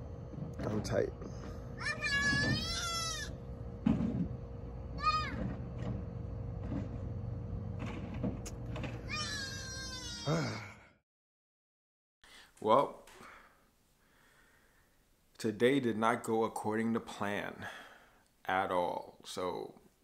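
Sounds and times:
steady low hum: 0.0 - 10.6
animal high-pitched wavering calls: 1.9 - 3.4.

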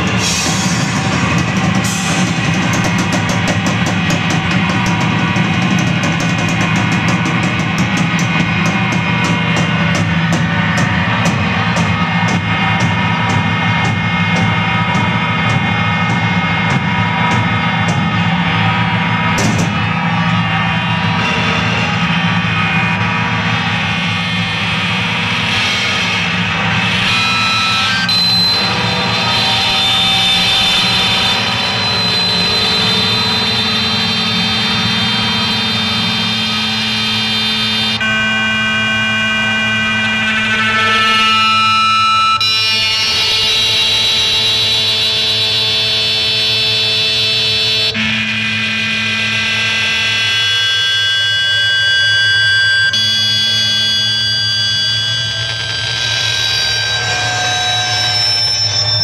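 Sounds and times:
noise rock band playing: 0.0 - 38.1, 50.2 - 59.0
high whining tones: 0.0 - 59.0.

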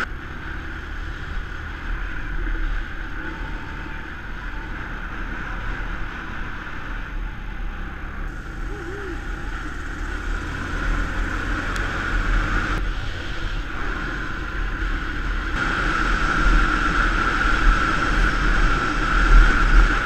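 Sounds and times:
motorbike engine drone: 0.0 - 20.0
wind rush and buffeting: 8.3 - 20.0.

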